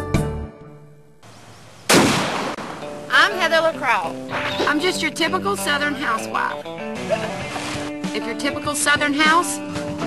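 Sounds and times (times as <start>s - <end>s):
loud blast: 1.9s - 2.9s.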